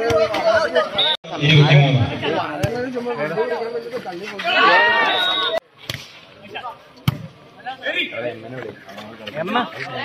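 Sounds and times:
loud shouting voices: 4.4s - 5.6s.

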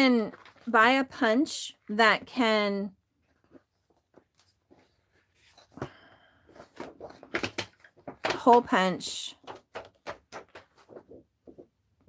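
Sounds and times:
paper pages rustling and clicking: 0.0s - 1.0s, 3.3s - 11.8s.

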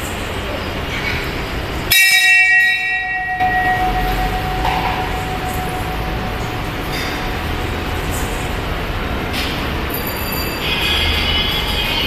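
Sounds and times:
steady background noise: 0.0s - 12.0s
temple bell ringing: 1.9s - 12.0s.

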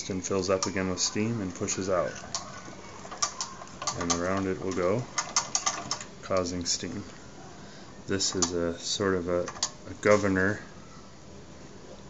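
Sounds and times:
toy steam engine metal clicks: 2.2s - 6.5s, 8.3s - 8.6s, 9.4s - 10.2s.

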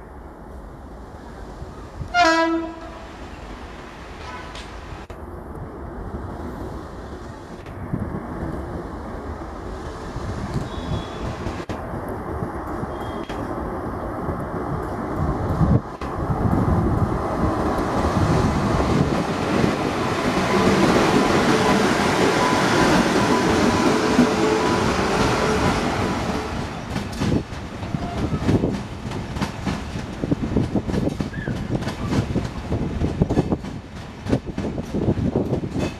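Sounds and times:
train wheels rumbling on rails: 1.6s - 35.9s
faint squeal tone: 12.9s - 13.4s.

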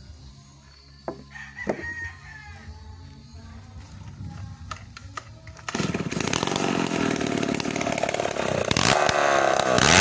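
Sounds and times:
rooster crowing: 1.2s - 2.8s.

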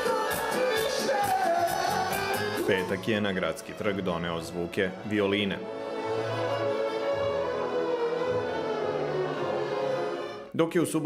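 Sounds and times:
violin ensemble holding notes: 2.5s - 10.5s.

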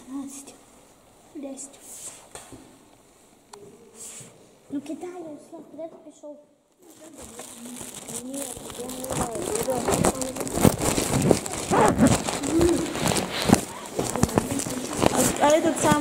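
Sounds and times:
rustling: 6.8s - 16.0s
voices talking: 6.8s - 16.0s.

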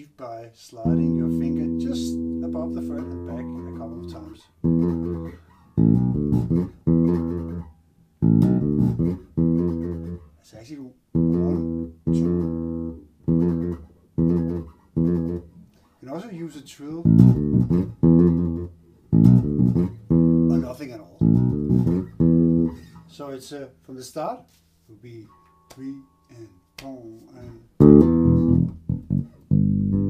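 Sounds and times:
electric bass funk line: 0.9s - 10.2s, 11.2s - 15.4s, 17.0s - 22.8s, 27.8s - 30.0s.

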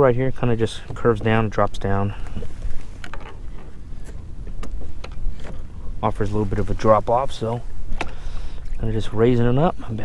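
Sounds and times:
choppy water: 0.0s - 10.0s
low rumble of wind: 0.0s - 10.0s.

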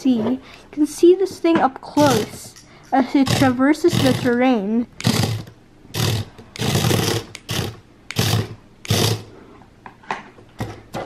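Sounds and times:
toy robot motor whirring: 2.0s - 2.4s, 3.2s - 4.4s, 5.0s - 9.3s.

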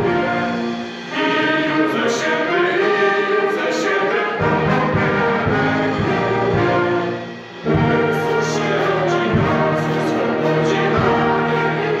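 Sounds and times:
group singing a carol: 0.0s - 12.0s.

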